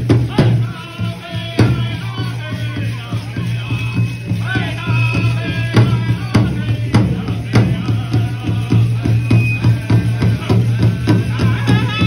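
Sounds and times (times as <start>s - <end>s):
big drum steady beat: 0.0s - 12.0s
group singing high voices: 0.0s - 12.0s.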